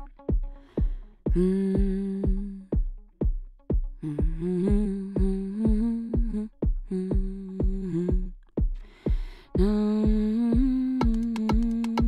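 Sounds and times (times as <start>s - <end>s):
kick drum beat: 0.0s - 12.0s
hi-hat ticks: 10.6s - 12.0s.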